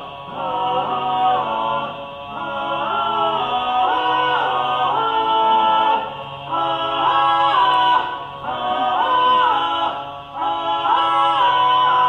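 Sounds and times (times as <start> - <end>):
men singing close harmony chords: 0.0 - 12.0.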